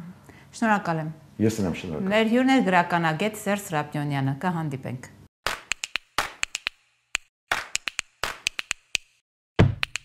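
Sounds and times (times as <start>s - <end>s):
sharp percussive clicks: 5.5s - 10.0s.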